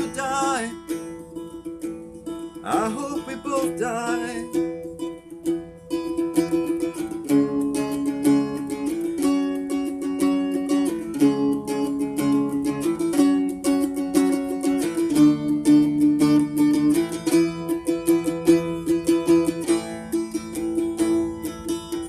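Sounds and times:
slide acoustic guitar playing: 0.0 - 22.0.

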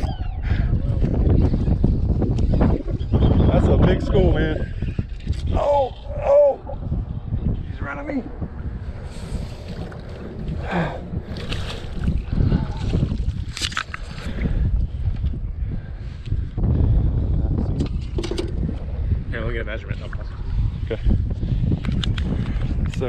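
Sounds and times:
wind rumbling on microphone: 0.0 - 23.0.

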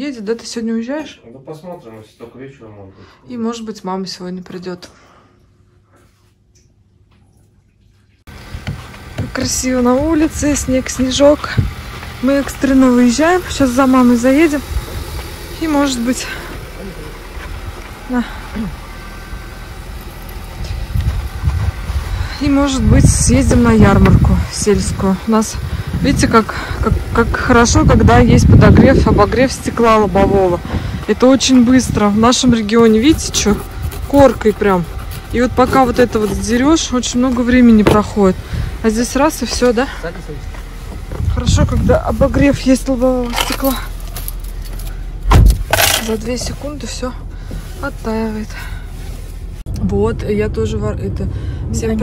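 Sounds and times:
car engine idling: 8.3 - 52.0
wind rumbling on microphone: 20.4 - 39.0, 40.5 - 43.1
short rustling: 40.5 - 49.7
loud thump: 45.2 - 45.8.

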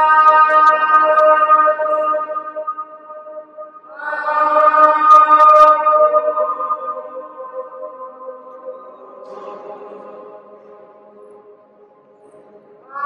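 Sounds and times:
person singing long held notes: 0.0 - 11.3, 12.4 - 13.0.

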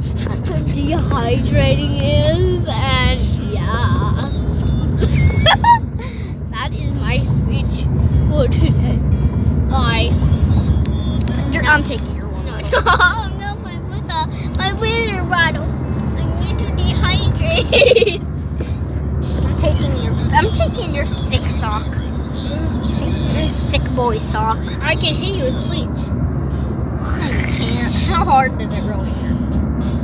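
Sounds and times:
road rumble inside car: 0.0 - 30.0.

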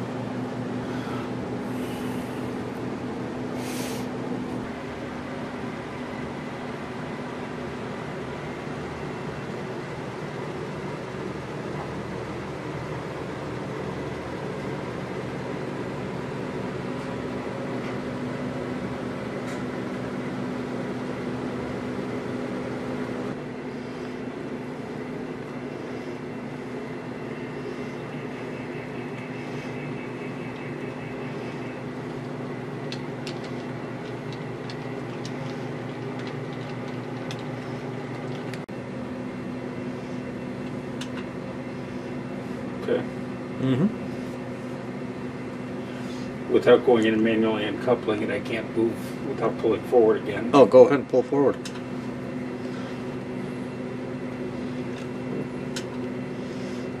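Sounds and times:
model locomotive electric hum: 0.0 - 57.0.

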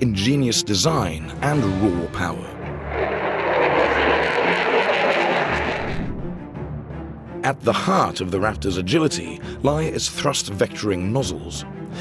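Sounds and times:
jet fighter flying past: 2.5 - 6.4.

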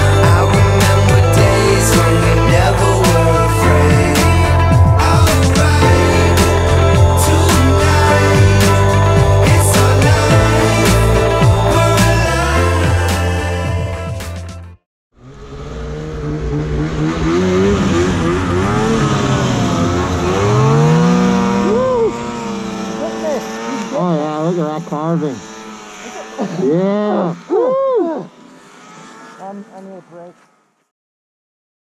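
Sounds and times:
snowmobile engine revving: 0.0 - 14.4, 15.2 - 30.9
music: 0.0 - 14.8
people shouting: 26.6 - 28.3.

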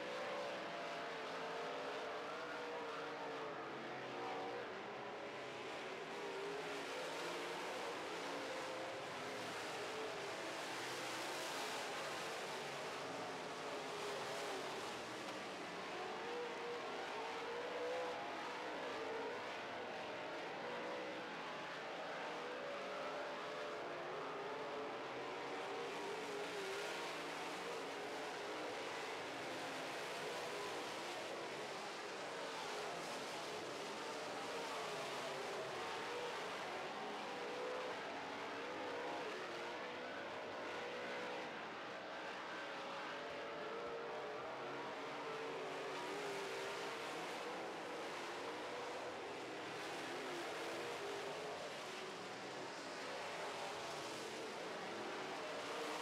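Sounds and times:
race car engines at speed: 0.3 - 56.0.

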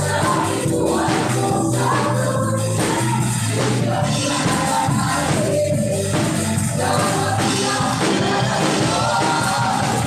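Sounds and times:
group of voices singing: 0.0 - 10.0
praise band playing: 0.0 - 10.0.

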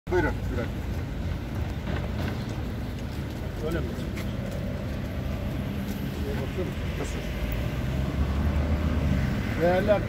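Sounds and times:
low street background rumble: 0.1 - 10.0.

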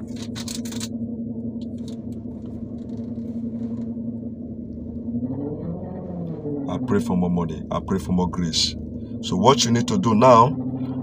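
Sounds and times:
car engine hum inside cabin: 0.0 - 11.0.

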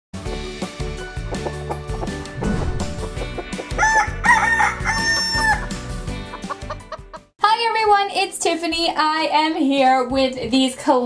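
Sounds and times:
upbeat intro music: 0.5 - 7.0
hen clucking: 3.0 - 7.2
rooster crowing: 3.7 - 5.8
woman speaking: 7.4 - 11.0.

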